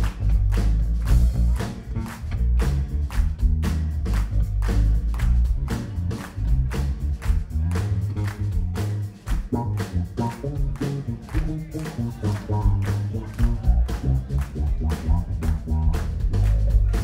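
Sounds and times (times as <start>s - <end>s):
electric bass guitar solo: 0.0s - 17.0s.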